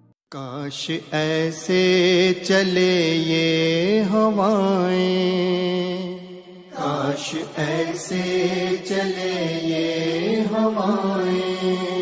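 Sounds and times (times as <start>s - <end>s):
person singing devotional song: 0.3s - 12.0s.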